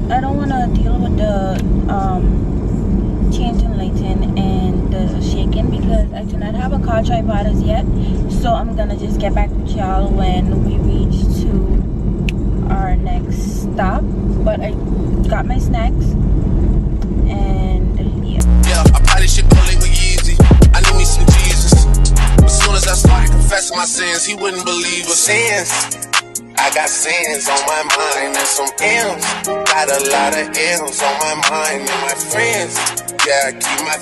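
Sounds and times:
woman talking: 0:00.0 - 0:02.4, 0:03.3 - 0:11.9, 0:12.6 - 0:16.2, 0:17.2 - 0:18.6
road and engine rumble: 0:00.0 - 0:34.0.

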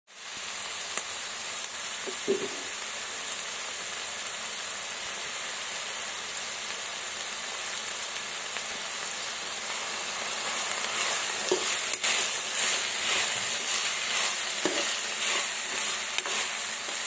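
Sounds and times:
onions sizzling in oil: 0:00.1 - 0:17.0.

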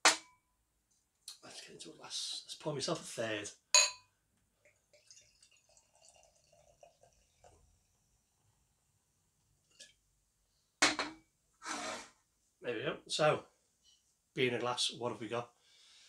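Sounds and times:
beer trickling into a glass: 0:04.8 - 0:07.8.

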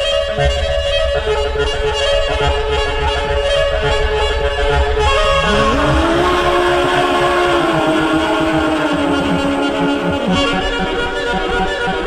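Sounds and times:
fast low pulse: 0:05.0 - 0:11.3
long held melodic note: 0:05.1 - 0:11.2
sustained tones: 0:05.1 - 0:11.5.

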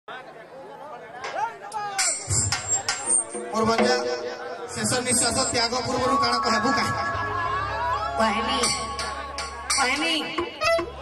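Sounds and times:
background chatter: 0:00.1 - 0:11.0
indistinct voices talking: 0:01.2 - 0:11.0.

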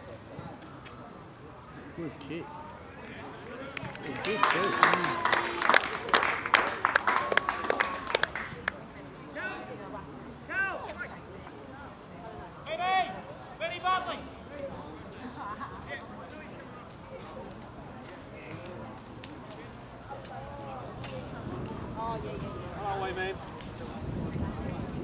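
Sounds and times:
scattered claps: 0:03.7 - 0:08.8.

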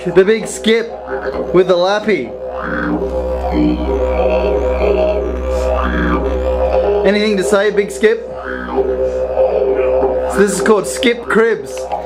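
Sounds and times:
didgeridoo drone: 0:00.0 - 0:12.0.

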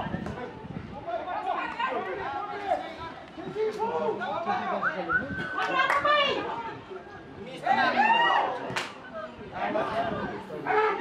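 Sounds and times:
voices chattering and calling out: 0:00.0 - 0:11.0
loud high shout: 0:07.7 - 0:08.7.

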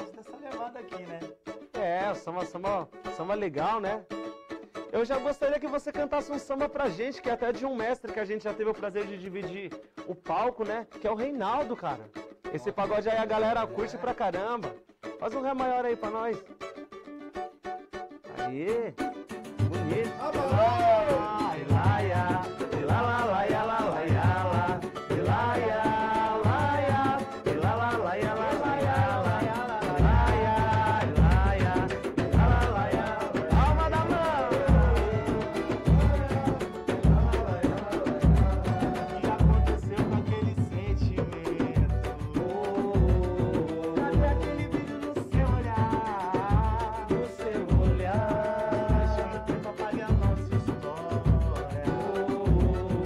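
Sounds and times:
person singing: 0:00.0 - 0:53.0
strummed accompaniment: 0:00.0 - 0:53.0
pitched melody line: 0:11.2 - 0:53.0
hand percussion: 0:18.4 - 0:53.0.

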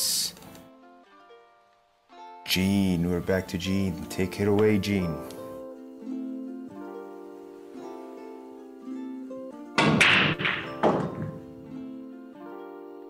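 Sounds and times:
guitar music: 0:00.0 - 0:13.0
pool balls cracking and clacking: 0:09.8 - 0:11.8.

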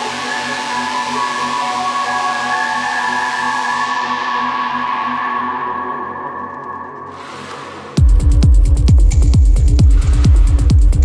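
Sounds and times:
hiss of noise: 0:07.1 - 0:08.0
steady bass pulse: 0:07.9 - 0:11.0.

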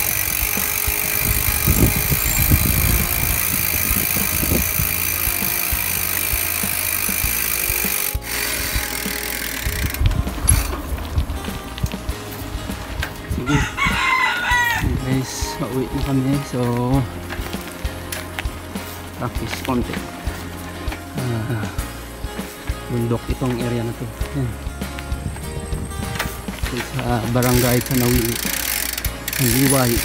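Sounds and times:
wind and bicycle riding noise: 0:00.0 - 0:30.0
rooster crowing: 0:13.4 - 0:15.2.

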